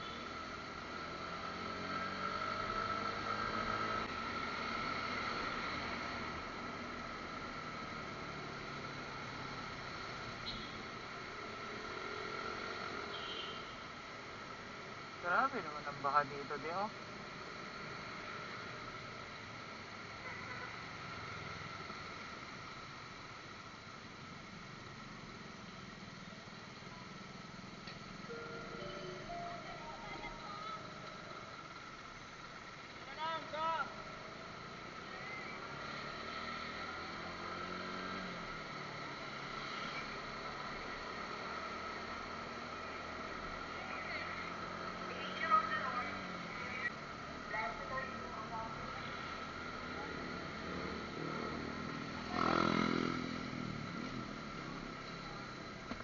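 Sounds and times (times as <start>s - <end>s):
motorcycle engine: 0.0s - 9.8s, 27.8s - 56.0s
road noise: 0.0s - 56.0s.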